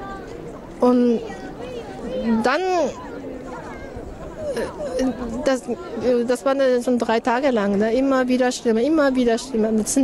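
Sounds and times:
city hubbub: 0:00.0 - 0:10.0
passers-by chatter: 0:00.0 - 0:10.0
woman speaking: 0:04.6 - 0:10.0.

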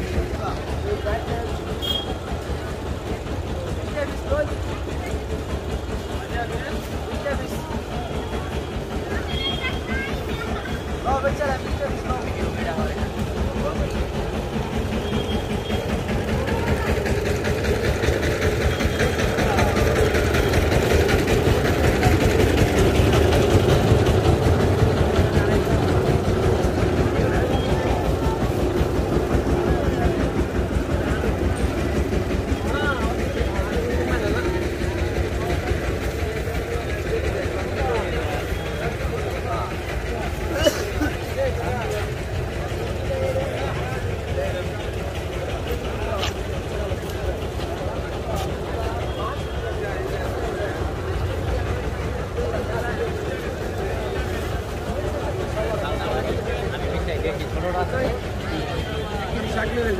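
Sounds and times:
many voices talking: 0:00.0 - 0:59.9.

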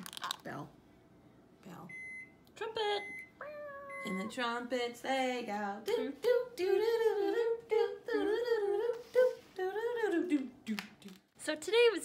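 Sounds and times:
woman humming: 0:03.4 - 0:04.5.

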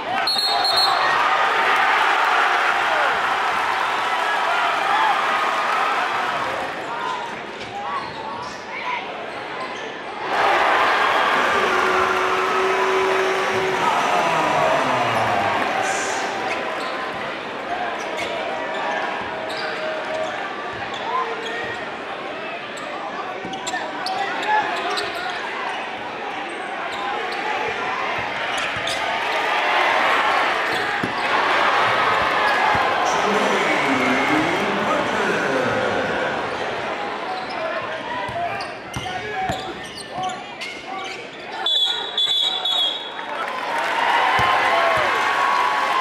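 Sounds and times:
crowd chatter and shouts: 0:00.0 - 0:46.0.

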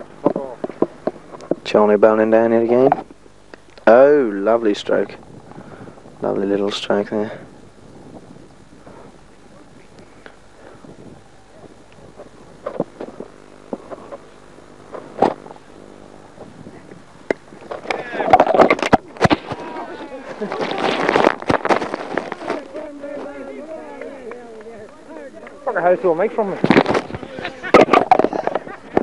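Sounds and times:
voices calling out: 0:08.6 - 0:15.0, 0:17.6 - 0:29.0.

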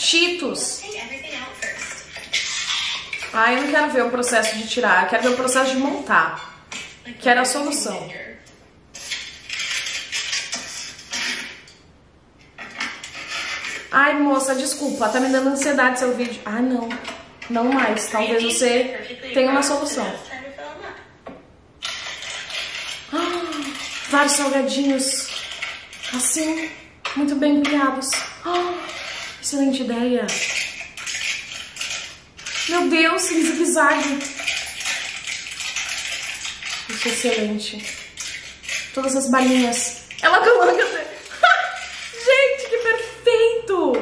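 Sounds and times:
plastic crinkling and rustling: 0:08.9 - 0:11.7, 0:12.4 - 0:15.4, 0:21.8 - 0:26.9, 0:28.0 - 0:43.0.

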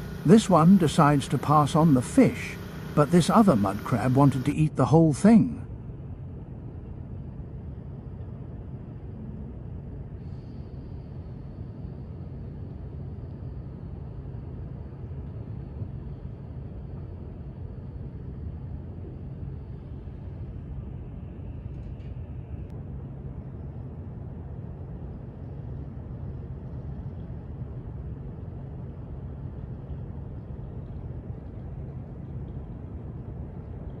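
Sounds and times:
faint high whine: 0:00.0 - 0:34.0
harbor background rumble: 0:00.0 - 0:34.0.

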